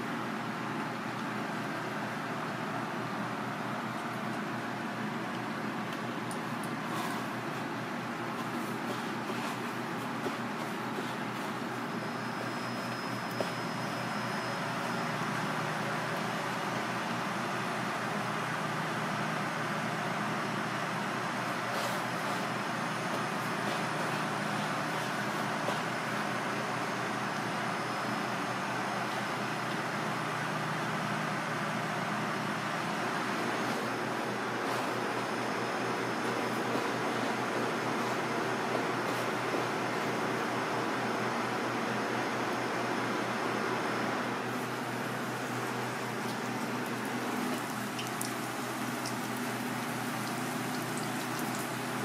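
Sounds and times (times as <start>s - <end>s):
kitchen machinery hum: 0.0s - 52.0s.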